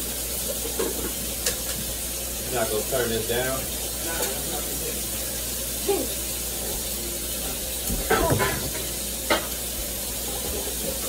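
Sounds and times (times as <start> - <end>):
steak sizzling in a pan: 0.0 - 11.0.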